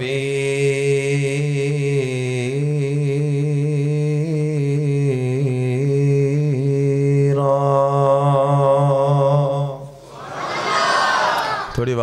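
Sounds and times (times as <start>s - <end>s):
man chanting through microphone: 0.0s - 10.0s.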